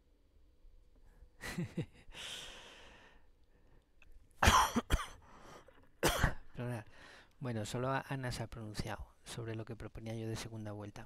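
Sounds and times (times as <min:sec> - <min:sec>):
man coughing: 0:04.4 - 0:05.2, 0:06.0 - 0:06.5.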